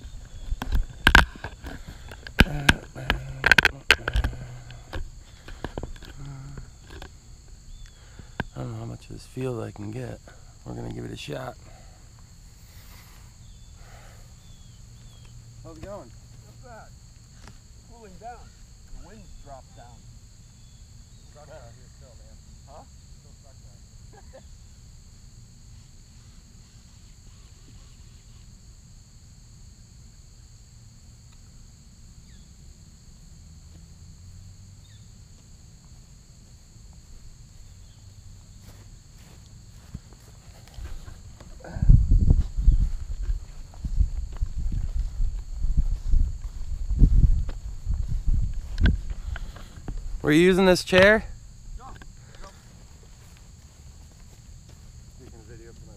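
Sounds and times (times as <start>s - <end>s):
camera handling thumps and rustling: 0.0s - 6.2s
insect chirring: 0.0s - 55.9s.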